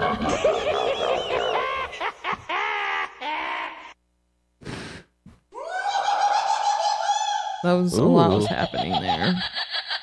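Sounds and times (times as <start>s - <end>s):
short breathy hiss: 4.6s - 5.2s
long high cry: 5.6s - 7.6s.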